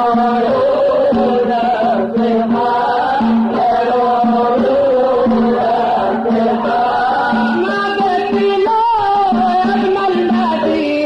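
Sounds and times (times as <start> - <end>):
devotional chant: 0.0 - 11.0.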